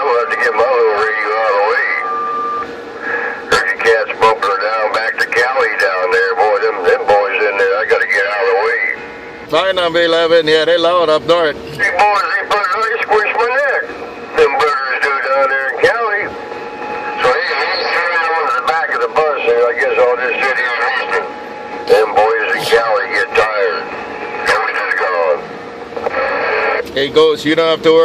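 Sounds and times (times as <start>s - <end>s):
steady radio tone: 0.0s - 9.9s, 10.7s - 26.9s
distant voices over radio speaker: 0.0s - 28.0s.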